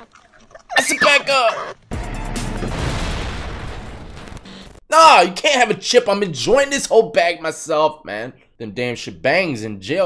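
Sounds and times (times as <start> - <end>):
booming impact with low rumble: 1.9 - 4.5.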